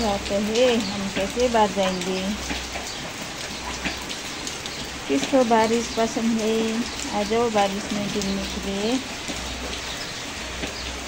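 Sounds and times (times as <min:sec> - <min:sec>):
drops ticking: 0:00.0 - 0:11.0
heavy rain on concrete: 0:00.0 - 0:11.0.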